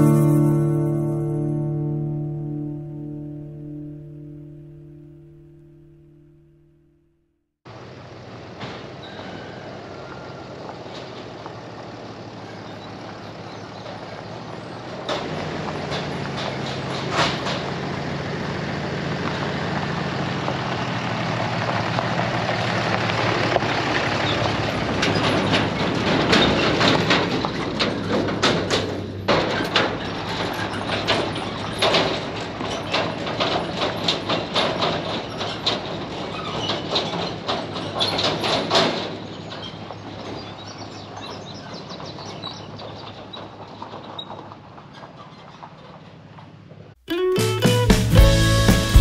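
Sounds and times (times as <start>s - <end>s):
truck engine hum: 0.0s - 49.0s
tyres crunching on gravel: 7.7s - 47.0s.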